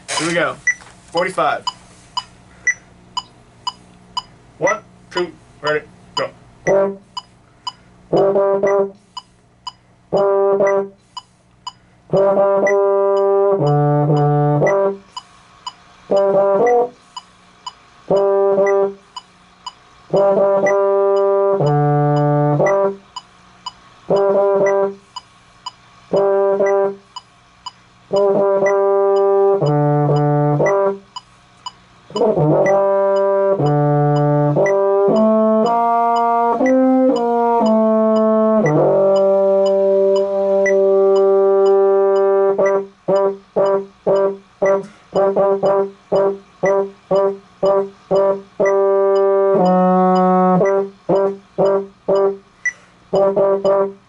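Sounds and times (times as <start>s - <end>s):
baritone horn playing: 6.7s - 7.1s, 8.1s - 9.0s, 10.1s - 11.0s, 12.1s - 15.1s, 16.1s - 17.0s, 18.1s - 19.0s, 20.1s - 23.0s, 24.1s - 25.0s, 26.1s - 27.0s, 28.1s - 31.0s, 32.1s - 52.4s, 53.1s - 54.0s.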